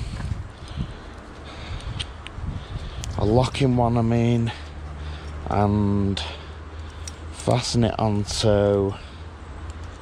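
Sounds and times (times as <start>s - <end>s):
carabiner and lead handling rustle: 0.0s - 6.0s, 6.7s - 10.0s
light carabiner clicks: 0.6s - 2.4s, 6.8s - 7.6s, 9.6s - 10.0s.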